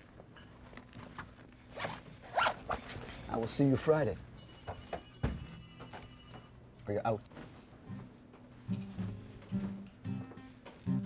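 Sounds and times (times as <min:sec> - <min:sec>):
zipper pulled: 0:01.7 - 0:03.1.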